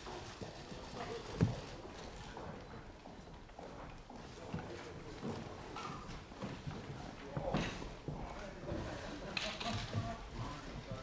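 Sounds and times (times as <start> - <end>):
footsteps on stage: 0.1 - 11.0.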